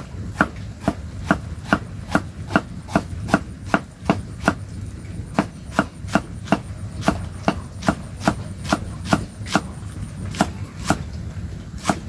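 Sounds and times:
knife chopping on wooden board: 0.0s - 4.6s, 5.4s - 11.1s, 11.8s - 12.0s.

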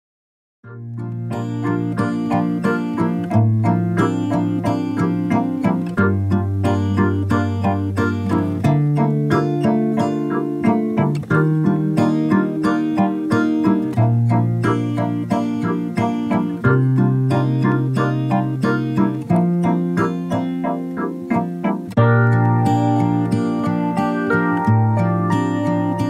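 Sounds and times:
held bass notes: 0.7s - 13.3s, 13.9s - 26.0s
keyboard playing quick notes: 1.3s - 26.0s.

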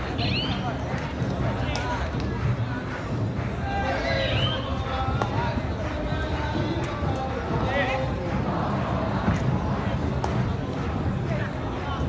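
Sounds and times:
crowd voices din: 0.0s - 12.0s.

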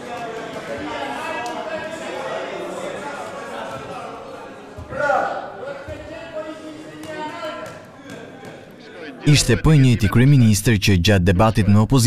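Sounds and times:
voices talking in echoing hall: 0.0s - 12.0s.

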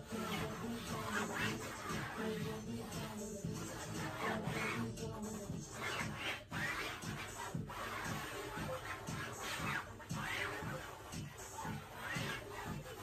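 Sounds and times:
background music: 0.0s - 13.0s
pencil scratching on canvas: 0.0s - 13.0s.

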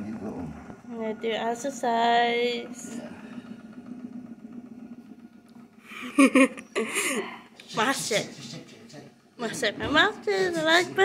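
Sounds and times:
vibration plate humming: 0.0s - 11.0s.

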